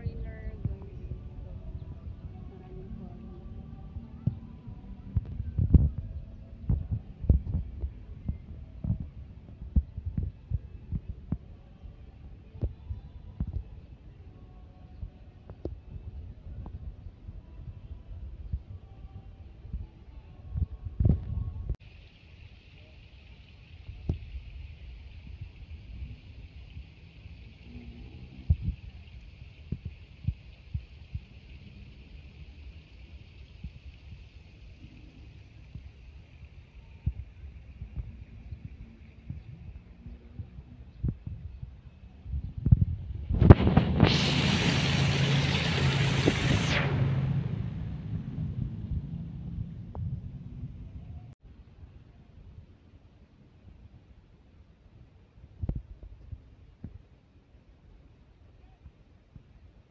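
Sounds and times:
fountain water splashing: 21.8 - 39.7, 43.5 - 48.1
loud rushing noise with low hum: 42.3 - 51.4.

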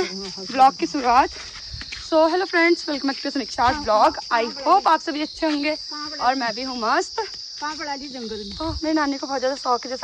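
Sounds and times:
woman talking: 0.0 - 1.3, 2.1 - 10.0
insects droning: 0.0 - 10.0.

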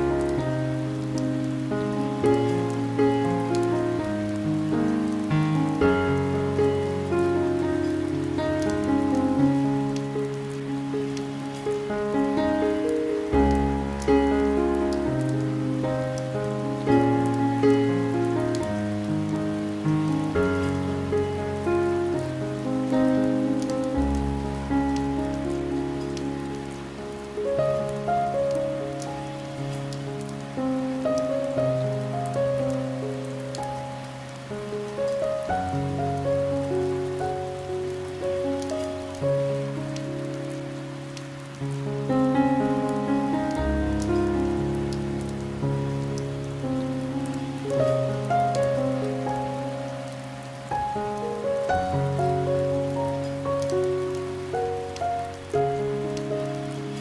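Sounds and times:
rain pattering: 0.0 - 57.0
slow piano chords: 0.0 - 57.0.

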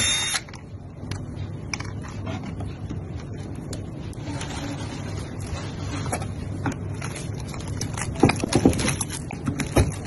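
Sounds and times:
steady low hum: 0.0 - 10.0
knocks and rustles of handling: 0.6 - 10.0.

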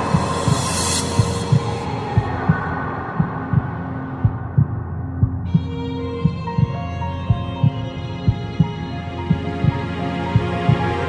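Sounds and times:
high hiss: 0.0 - 4.3
heartbeat-like double thump: 0.0 - 9.8
sustained synth chord: 0.0 - 11.0.

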